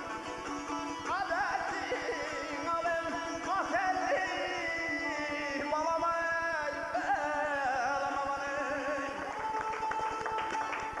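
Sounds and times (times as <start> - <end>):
folk ensemble with lute and drum: 0.0 - 11.0
person singing: 1.0 - 11.0.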